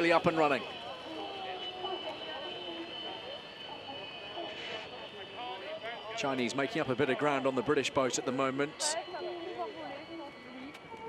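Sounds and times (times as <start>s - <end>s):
faint voices talking: 0.0s - 11.0s
high-pitched whine: 0.0s - 11.0s.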